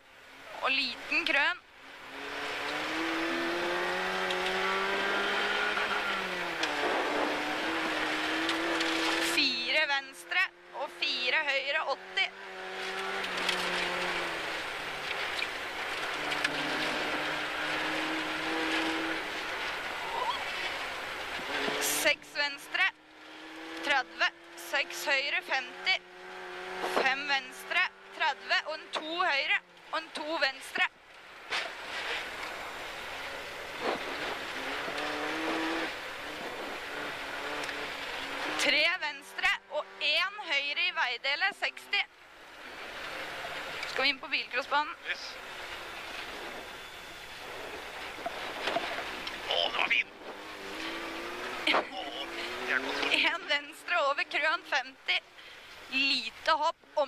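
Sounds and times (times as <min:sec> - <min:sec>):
rally car engine running hard: 0:02.0 - 0:30.1, 0:32.0 - 0:40.9, 0:44.6 - 0:54.9.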